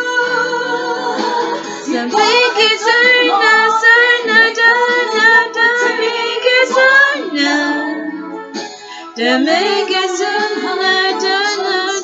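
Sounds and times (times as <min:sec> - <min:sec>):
woman singing into a microphone: 0:00.0 - 0:08.4, 0:09.0 - 0:12.0.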